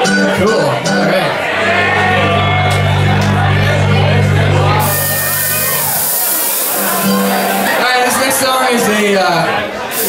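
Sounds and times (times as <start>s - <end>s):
band chord ringing out: 0.0s - 8.0s
audience cheering: 1.2s - 7.8s.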